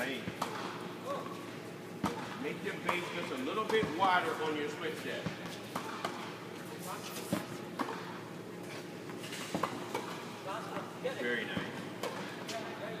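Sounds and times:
tennis balls hit and bouncing: 0:00.0 - 0:13.0.

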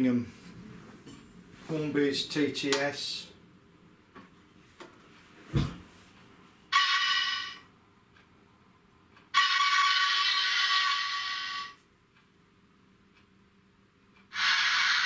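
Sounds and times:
soft thump: 0:05.5 - 0:05.9
model train steam whistle: 0:06.7 - 0:07.6, 0:09.4 - 0:11.8, 0:14.3 - 0:15.0.

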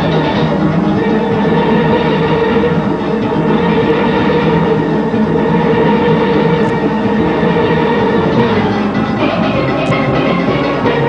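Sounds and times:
steel orchestra playing: 0:00.0 - 0:11.0.

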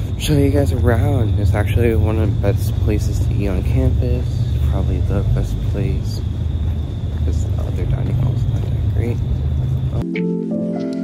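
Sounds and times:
heavy low city rumble: 0:00.0 - 0:10.1.

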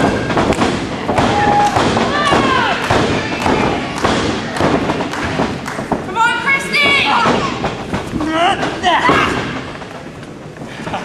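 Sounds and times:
wrestlers thudding on ring canvas: 0:00.0 - 0:10.2.

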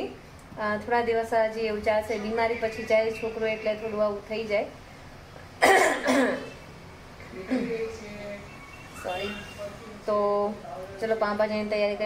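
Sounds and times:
woman coughing: 0:05.6 - 0:06.6.

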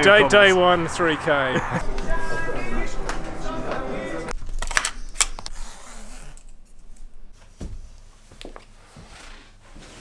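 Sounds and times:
man laughing and talking: 0:00.1 - 0:02.8.

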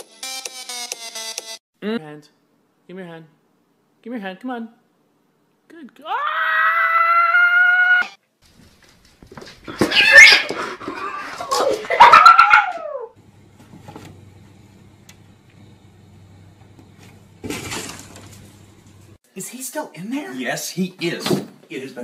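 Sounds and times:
cat calling loudly: 0:09.8 - 0:13.1.

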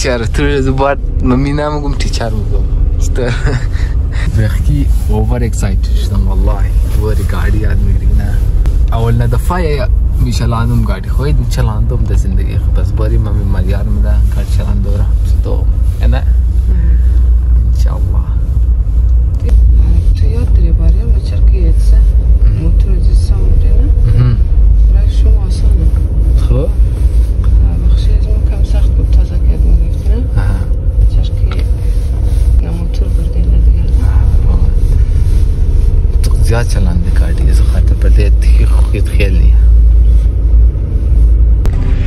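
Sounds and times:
car cabin rumble: 0:00.0 - 0:42.0.

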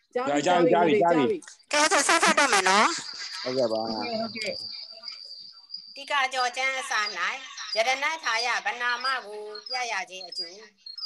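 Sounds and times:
high-pitched tone: 0:01.7 - 0:03.0.

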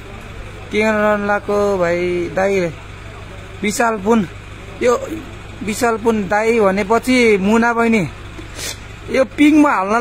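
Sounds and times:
engine humming: 0:00.0 - 0:10.0.

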